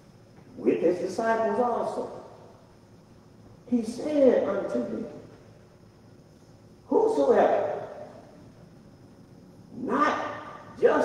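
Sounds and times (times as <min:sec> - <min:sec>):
man's voice in reverberant hall: 0:00.5 - 0:02.6, 0:03.6 - 0:05.4, 0:06.9 - 0:08.4, 0:09.7 - 0:11.0.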